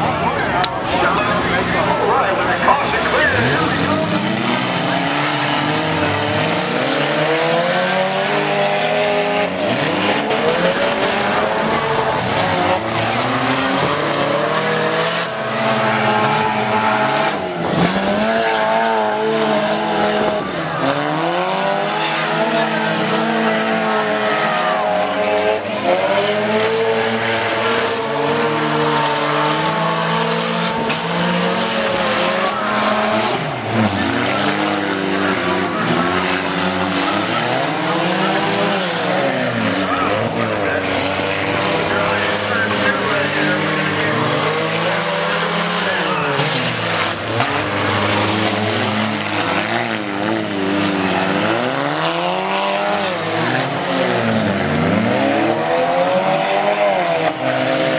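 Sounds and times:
stock car engines revving: 0.0 - 57.9.

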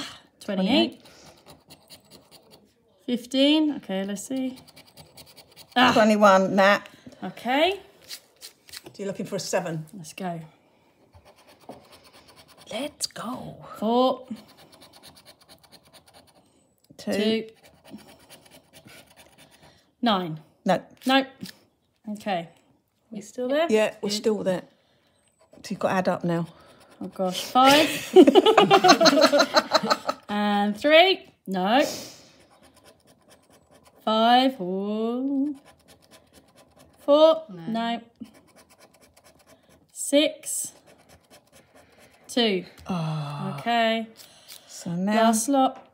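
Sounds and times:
scratching a scratch card: 0.8 - 2.7, 4.0 - 6.2, 8.0 - 9.2, 11.2 - 13.0, 14.2 - 19.7, 25.4 - 27.7, 32.4 - 34.1, 35.3 - 37.4, 38.2 - 42.4.

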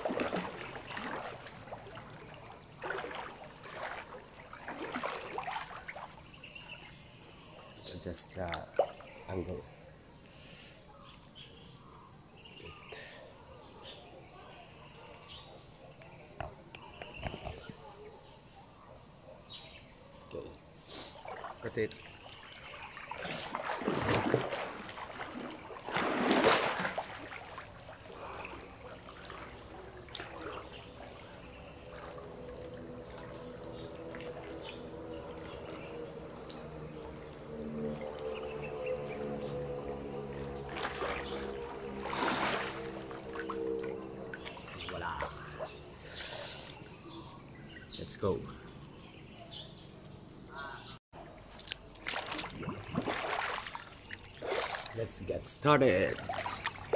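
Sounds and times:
pool water splashing and lapping: 0.0 - 56.9
steady low hum: 22.9 - 47.6.

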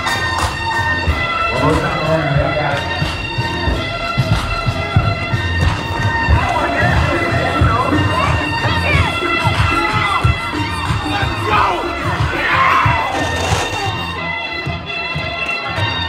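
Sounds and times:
dance music with pulsing bass: 0.0 - 14.2
crowd cheering and shouting: 0.0 - 16.0.

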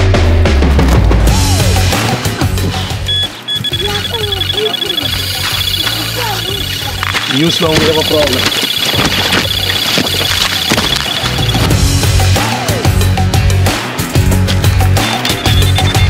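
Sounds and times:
background music: 0.0 - 16.0
bite alarm beeping rapidly: 2.9 - 11.9, 15.3 - 16.0.

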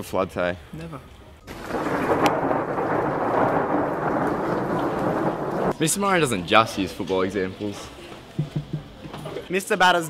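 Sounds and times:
sharp crack: 1.5 - 5.8
heavy rain downpour: 1.5 - 6.1.

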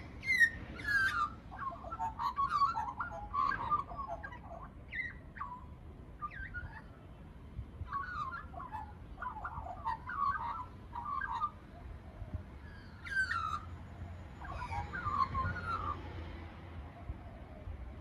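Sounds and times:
magpie warbling: 0.2 - 5.6, 7.9 - 11.6.

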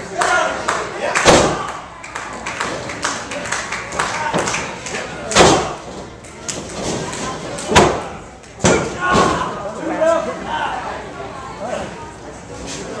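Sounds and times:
sharp impacts in wrestling ring: 5.3 - 9.6.

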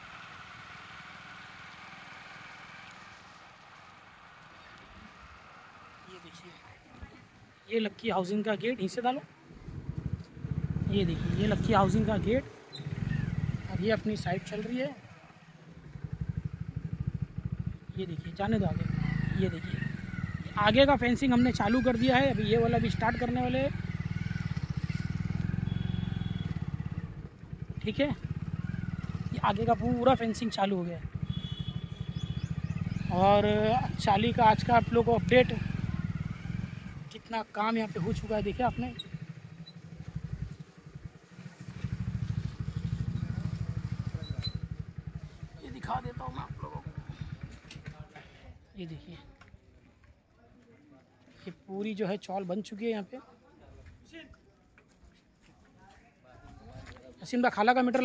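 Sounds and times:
motorcycle engine idling: 9.4 - 48.7.

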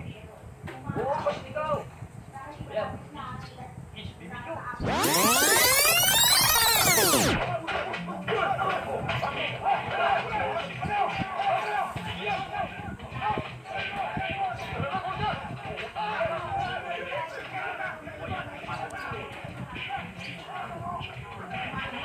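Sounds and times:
sweeping tones sound effect: 4.8 - 7.5.

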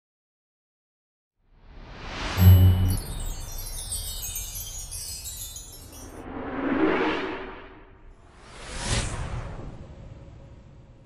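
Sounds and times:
shimmering chime cascade: 2.4 - 7.5.

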